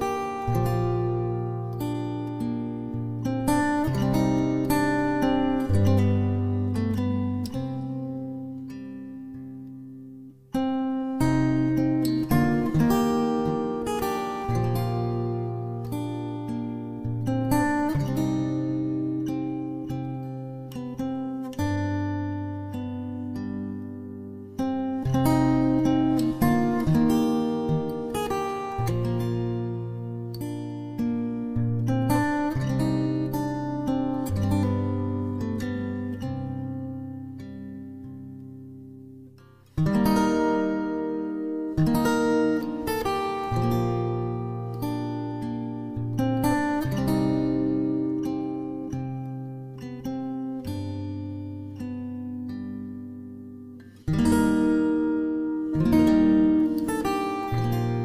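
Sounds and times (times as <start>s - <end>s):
acoustic guitar chords: 0.0s - 58.0s.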